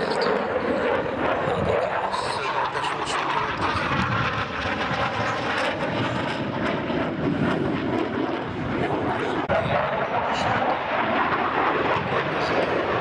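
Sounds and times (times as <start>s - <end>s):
fighter jet engines roaring: 0.0s - 13.0s.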